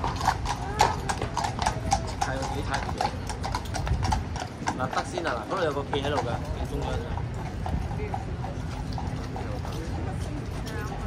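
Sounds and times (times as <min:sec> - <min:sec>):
faint crowd chatter: 0:00.0 - 0:11.0
hooves clip-clopping on stone: 0:00.0 - 0:11.0.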